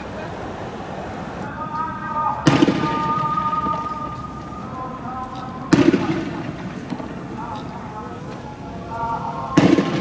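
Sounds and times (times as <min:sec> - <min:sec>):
sharp gunshot bangs: 0:02.4 - 0:03.8, 0:05.7 - 0:07.2, 0:09.5 - 0:10.0.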